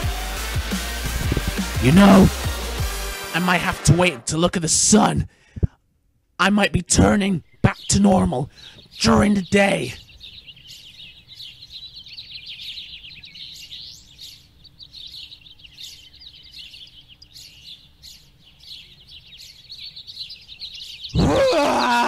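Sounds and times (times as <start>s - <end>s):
birds chirping: 0.0s - 22.0s.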